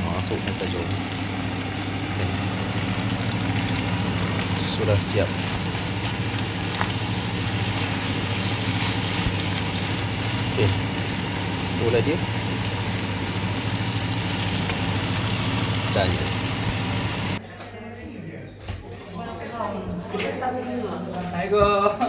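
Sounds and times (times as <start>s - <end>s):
food sizzling in a frying pan: 0.0s - 17.4s.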